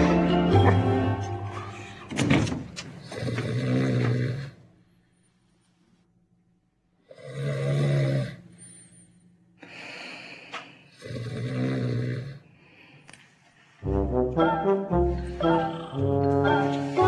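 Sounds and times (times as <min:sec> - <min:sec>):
brass music: 0:00.0 - 0:01.7, 0:13.8 - 0:17.0
person snoring loudly: 0:07.1 - 0:08.4, 0:11.0 - 0:12.4
soft breath: 0:08.6 - 0:11.0, 0:12.5 - 0:13.8.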